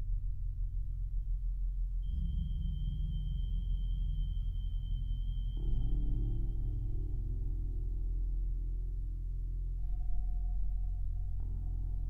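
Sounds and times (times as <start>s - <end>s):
low synthesizer drone: 0.0s - 12.0s.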